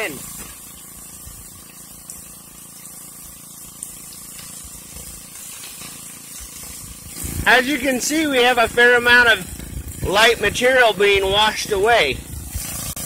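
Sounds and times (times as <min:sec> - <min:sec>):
faint pump hum: 0:00.0 - 0:13.0
water spraying and splashing: 0:00.0 - 0:13.0.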